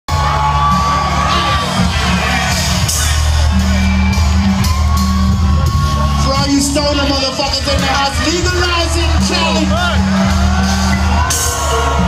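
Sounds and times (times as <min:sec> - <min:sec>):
crowd whooping and yelling: 0:00.1 - 0:12.0
loud live hip-hop music: 0:00.1 - 0:12.0.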